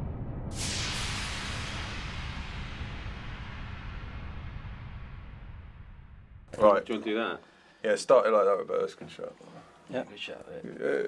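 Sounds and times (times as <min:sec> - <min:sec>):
whoosh hit: 0:00.0 - 0:06.6.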